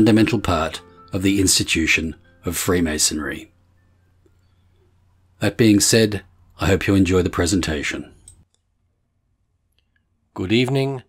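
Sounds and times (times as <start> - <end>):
narrator speaking: 0.0 - 3.5, 5.4 - 8.2.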